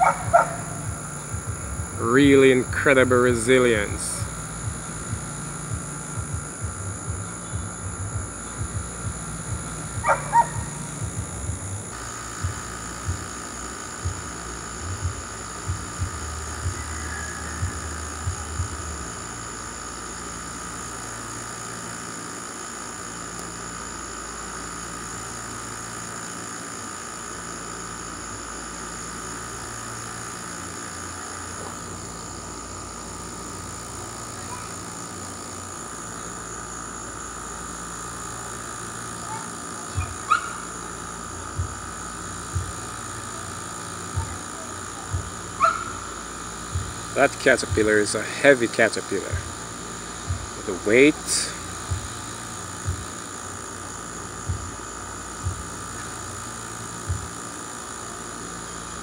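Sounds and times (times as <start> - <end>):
steady background drone: 0.0 - 59.0.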